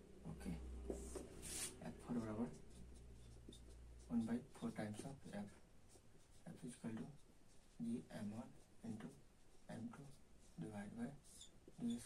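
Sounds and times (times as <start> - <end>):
marker scratching on whiteboard: 0.9 - 12.0.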